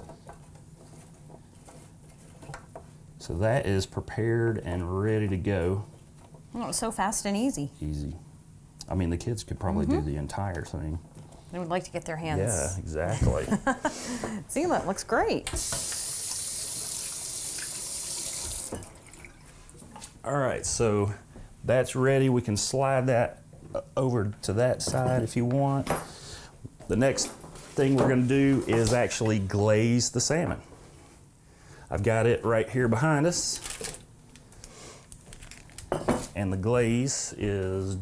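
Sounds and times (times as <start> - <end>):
faucet running: 15.6 - 19.7.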